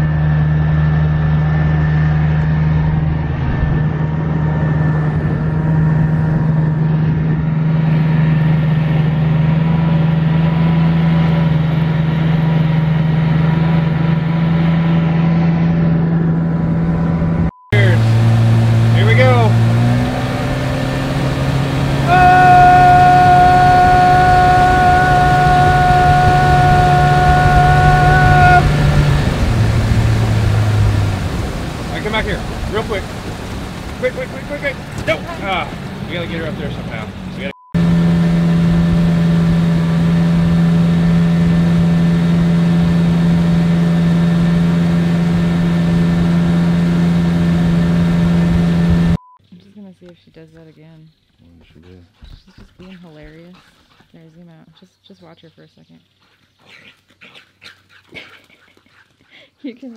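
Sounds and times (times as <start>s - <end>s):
boat motor humming: 0.0s - 49.2s.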